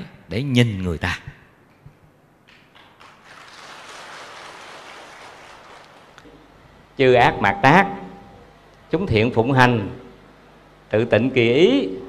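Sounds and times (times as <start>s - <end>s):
audience applauding: 2.6s - 6.2s.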